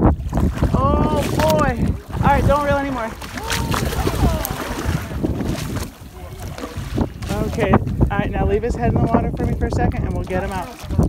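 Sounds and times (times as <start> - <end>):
wind rumble on microphone: 0.0 - 11.0
fish splashing at water surface: 0.2 - 7.6.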